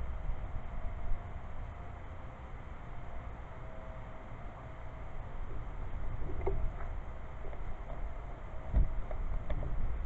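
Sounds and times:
wind rumbling on microphone: 5.2s - 10.0s.

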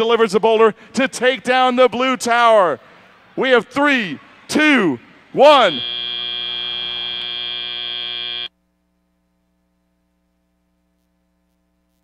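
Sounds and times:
buzzy buzzer tone: 5.4s - 8.5s.

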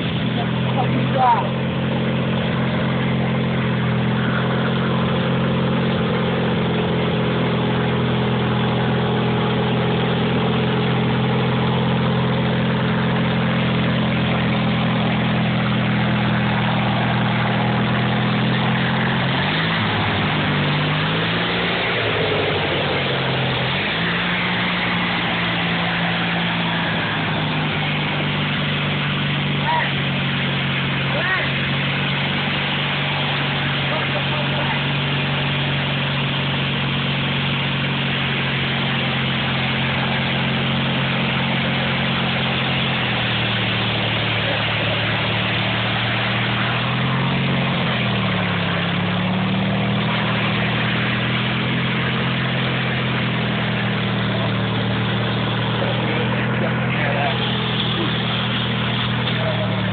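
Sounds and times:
garden tractor engine running: 0.0s - 59.9s.

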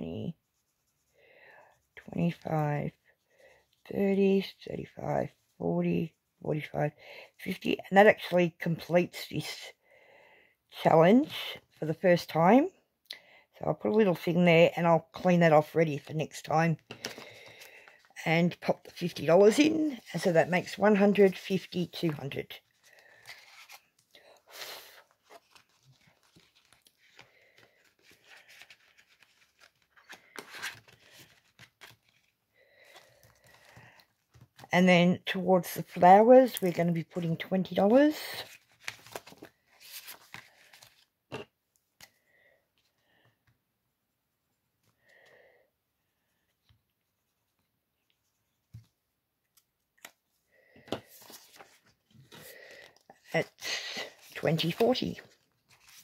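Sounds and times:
plastic pouch crinkling and rustling: 22.6s - 24.2s, 24.8s - 34.0s, 38.5s - 41.1s.

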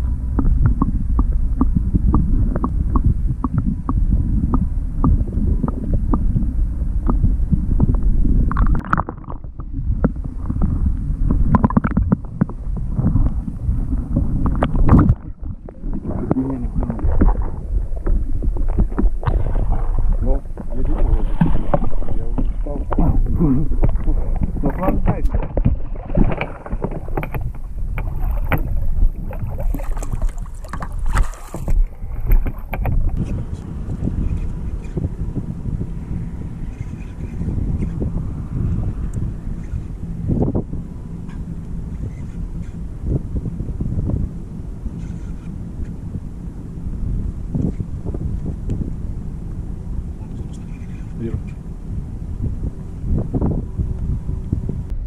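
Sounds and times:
wind on microphone: 0.0s - 55.0s
knocks and water splashes: 14.0s - 33.3s.

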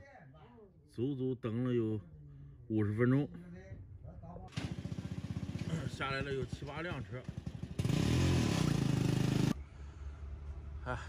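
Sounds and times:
engine revving: 4.5s - 9.6s
low steady engine drone: 9.5s - 11.0s.

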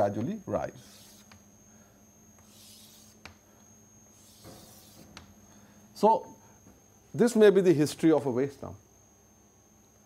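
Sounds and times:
faint steady hum: 0.0s - 10.0s
chalk scraping on chalkboard: 0.8s - 1.4s, 2.4s - 3.2s, 4.2s - 5.2s.

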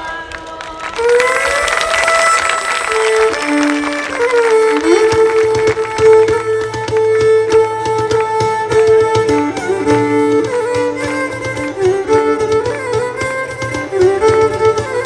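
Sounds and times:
folk dance music: 0.0s - 15.0s
percussion strokes: 1.2s - 15.0s.

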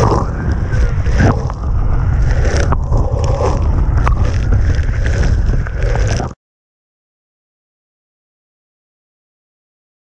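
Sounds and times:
wind buffeting microphone: 0.0s - 6.4s.

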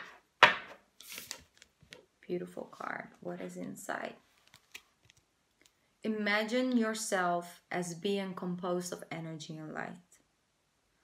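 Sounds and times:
cards rubbing: 1.0s - 1.7s.

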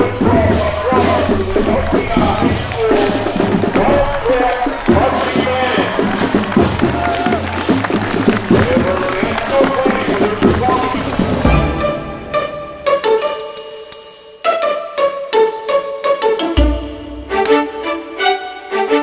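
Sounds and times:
marching band drums: 0.0s - 12.7s
marching band melody instruments: 0.0s - 19.0s.

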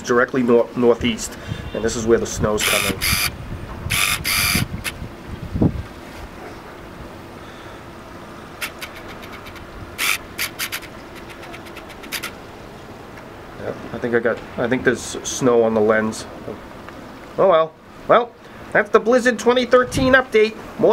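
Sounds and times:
faint constant hum: 0.0s - 20.9s
wind buffeting microphone: 0.9s - 7.2s, 19.8s - 20.2s
sharp ticks: 2.6s - 3.3s, 3.9s - 5.0s, 8.6s - 12.4s
crackling bursts: 8.6s - 12.4s.

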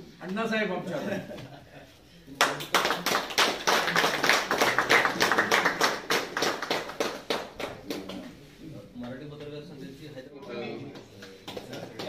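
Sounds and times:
people applauding: 2.4s - 8.3s, 10.9s - 12.0s.

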